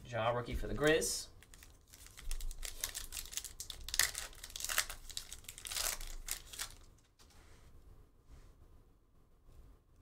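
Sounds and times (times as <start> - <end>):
foil wrapper crinkling and tearing: 1.4 - 7.0.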